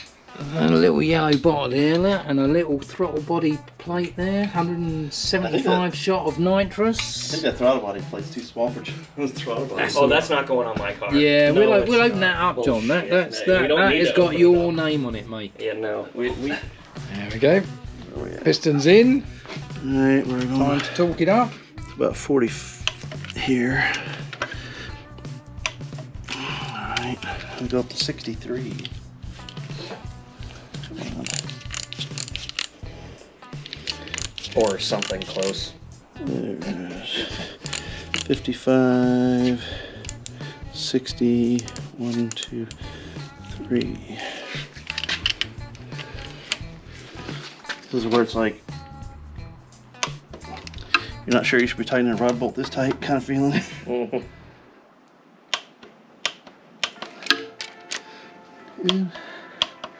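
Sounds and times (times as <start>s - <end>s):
background music: 0.0s - 54.8s, 55.5s - 59.9s
ratchet torque wrench clicking: 31.2s - 32.8s, 33.6s - 35.3s, 37.6s - 38.3s, 40.0s - 40.4s, 41.6s - 42.8s.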